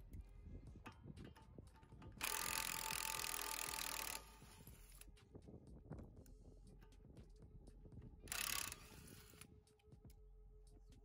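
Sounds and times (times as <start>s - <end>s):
impact wrench hammering: 2.0s - 4.4s.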